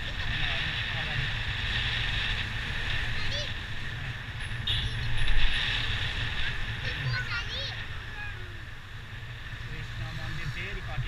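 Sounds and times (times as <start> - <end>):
road noise rumble: 0.0 - 11.0.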